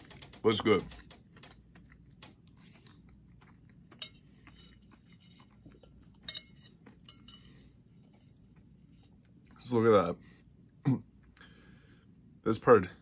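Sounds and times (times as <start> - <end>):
chewing cake: 0.0 - 9.6
spoon clinking on plate: 5.8 - 7.6.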